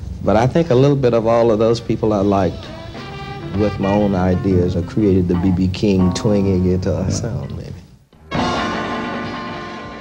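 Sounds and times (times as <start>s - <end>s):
sustained music chord ringing: 3.5s - 6.9s.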